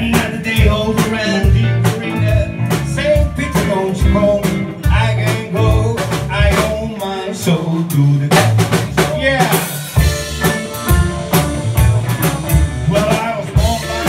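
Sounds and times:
man singing: 0.0s - 10.1s, 12.5s - 14.0s
drum kit: 0.0s - 14.0s
electric bass: 0.0s - 14.0s
electric guitars: 0.0s - 14.0s.

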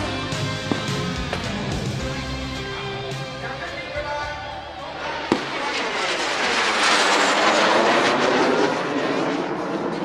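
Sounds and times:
jet flying overhead: 2.6s - 10.0s.

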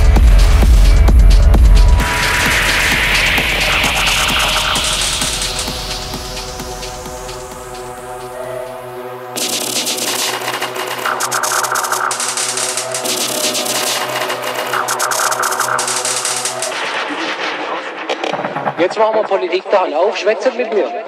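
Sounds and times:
rapid clatter of sharp clicks: 9.4s - 16.8s.

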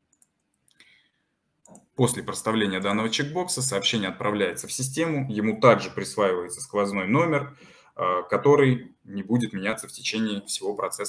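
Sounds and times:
computer mouse clicks: 0.1s - 0.8s, 1.6s - 1.9s, 2.8s - 3.0s.

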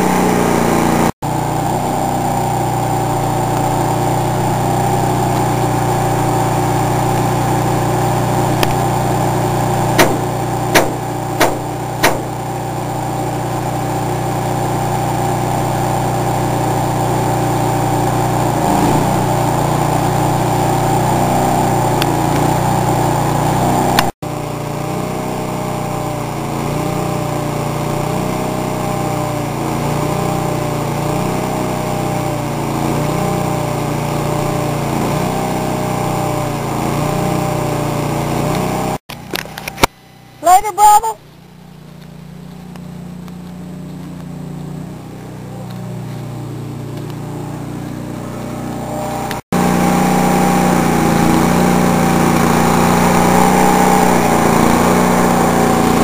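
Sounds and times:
welding machine engine running: 0.0s - 56.0s
sharp clicks: 10.0s - 12.3s.

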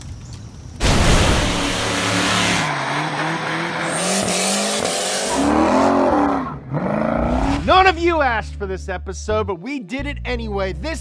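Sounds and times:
car engine revving: 0.8s - 6.2s
tyre squeal and skidding: 1.4s - 6.6s.

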